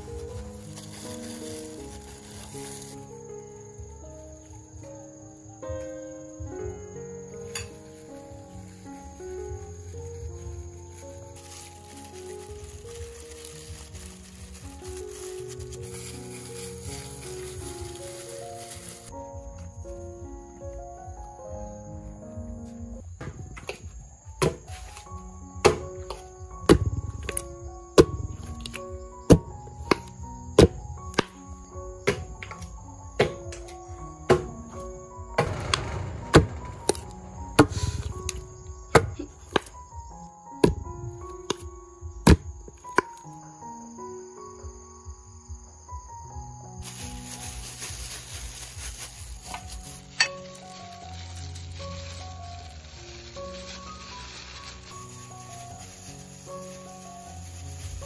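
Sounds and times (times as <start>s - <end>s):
gentle background music: 0.0s - 58.0s.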